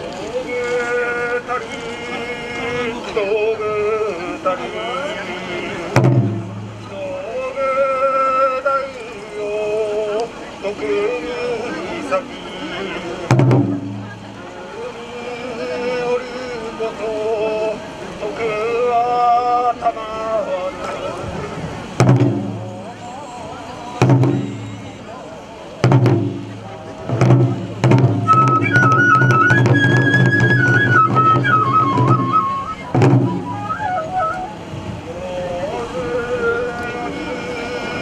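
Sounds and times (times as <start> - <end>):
bamboo flute melody: 0.0 - 19.2, 20.5 - 38.0
taiko drums: 5.9 - 7.0, 13.3 - 14.4, 22.0 - 23.0, 24.0 - 25.0, 25.8 - 34.7.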